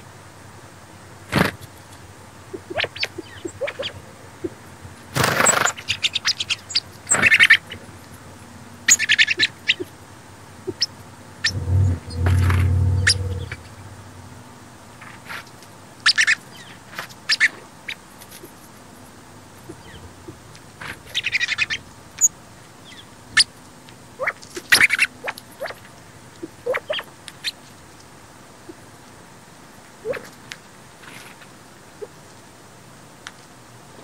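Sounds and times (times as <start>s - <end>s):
sparrows chirping: 2.5s - 4.6s, 5.4s - 8.0s, 8.7s - 10.0s, 10.7s - 13.7s, 16.0s - 18.5s, 19.6s - 20.1s, 20.9s - 21.9s, 22.8s - 23.5s
brief rushing noise: 11.4s - 14.3s
low rumble: 11.4s - 14.8s.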